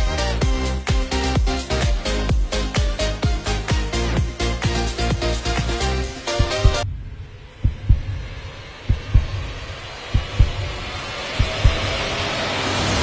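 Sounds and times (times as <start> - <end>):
rising hiss: 4.8 - 13.0
heartbeat thumps: 6.3 - 8.3, 8.9 - 12.0.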